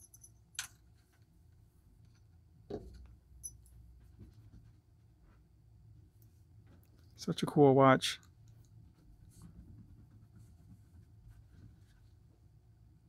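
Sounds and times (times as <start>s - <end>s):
soft knock: 2.7s - 3.0s
small ticks and rubs: 8.5s - 12.2s.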